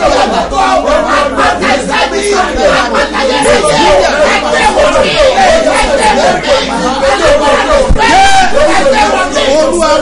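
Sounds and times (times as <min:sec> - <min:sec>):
preacher praying: 0:00.0 - 0:10.0.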